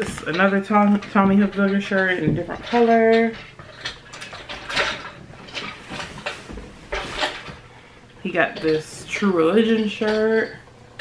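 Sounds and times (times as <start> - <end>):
shirts rustling and swishing: 4.8 - 7.7.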